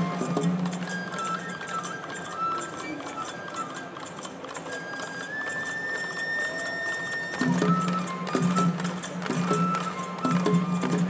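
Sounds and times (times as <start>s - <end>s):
fast clinking rhythm: 0.0s - 11.0s
soft drums: 7.4s - 11.0s.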